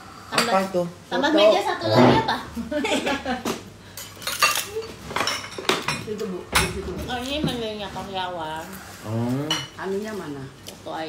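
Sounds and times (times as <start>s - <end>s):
utensils clinking on ceramic plates: 3.9s - 7.8s.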